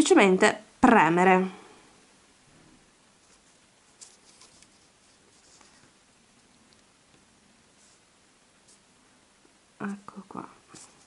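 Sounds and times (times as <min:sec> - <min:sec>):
light handling sounds: 0:03.2 - 0:06.9.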